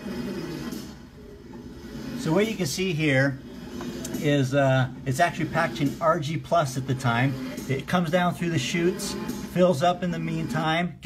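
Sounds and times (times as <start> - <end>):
packaging machine mechanical hum: 0.0 - 10.4.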